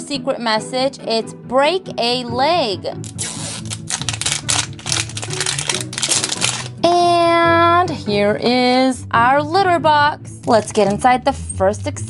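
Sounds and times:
soft background music: 0.0s - 12.0s
plastic wrap crackling: 3.0s - 6.8s.

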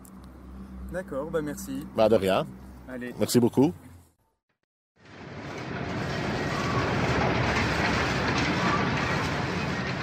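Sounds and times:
loud steady mechanical noise: 5.0s - 10.0s.

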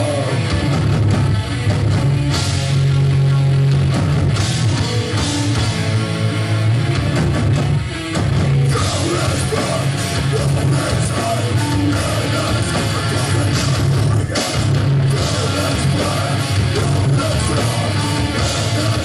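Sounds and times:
punk band playing live: 0.0s - 19.0s.

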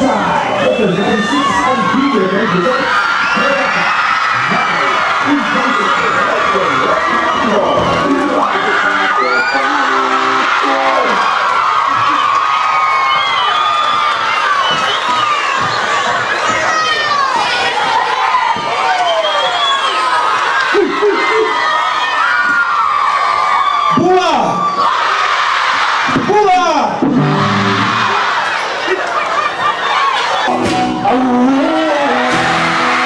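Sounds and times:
concert crowd cheering and screaming: 0.0s - 33.0s
deep nearby shouts: 30.5s - 33.0s.

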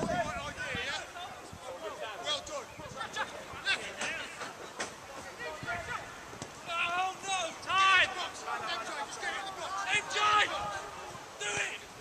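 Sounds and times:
outdoor background noise: 0.0s - 12.0s
players shouting: 5.2s - 12.0s.

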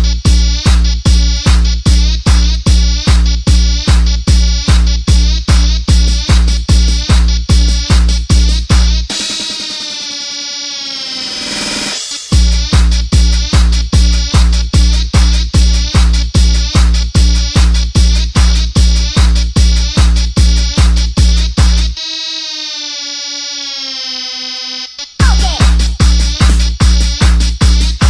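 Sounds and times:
buzzy synthesizer tone: 0.0s - 28.0s
fast pulsing stutter: 0.0s - 28.0s.

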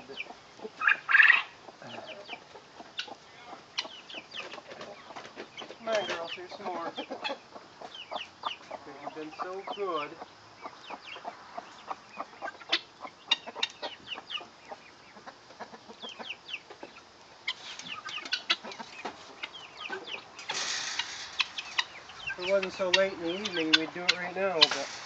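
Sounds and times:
chickens clucking and chirping: 0.0s - 25.0s
rustling: 17.5s - 25.0s.

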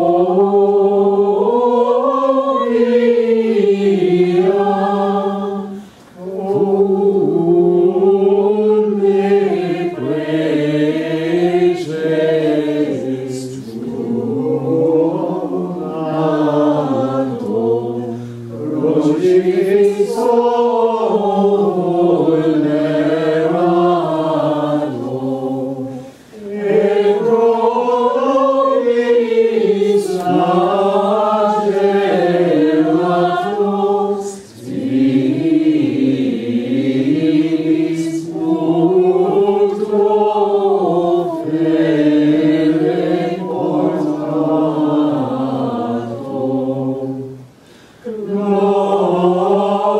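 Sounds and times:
choir singing plainchant in unison: 0.0s - 49.9s.

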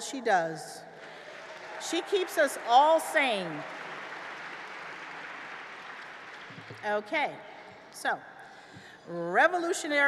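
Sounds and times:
audience applauding: 1.0s - 6.9s.

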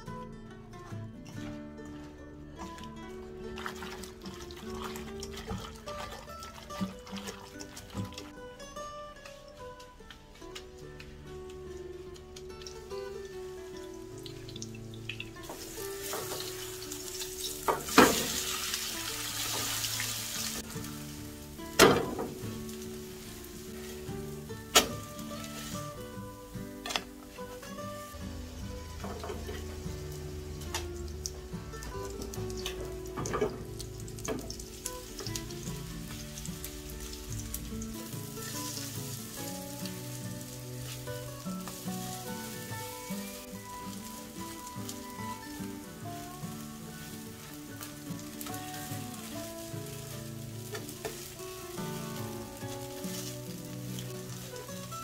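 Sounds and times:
quiet background music: 0.0s - 55.0s
batter sizzling in hot oil: 2.7s - 55.0s.

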